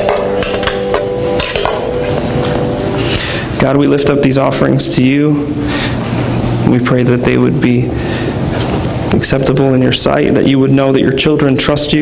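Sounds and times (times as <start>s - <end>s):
plates clinking: 0.0s - 3.3s
held musical note: 0.0s - 4.3s.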